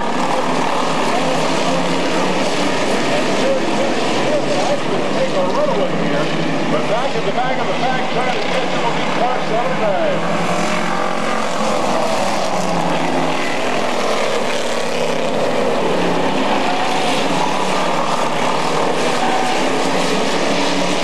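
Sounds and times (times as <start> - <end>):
race car engines in a pack: 0.0 - 21.0.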